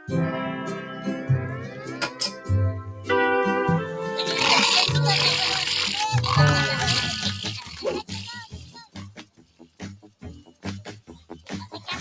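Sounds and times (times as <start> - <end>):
cartoon soundtrack music: 0.0 - 12.0
cartoon bear snoring: 4.2 - 8.2.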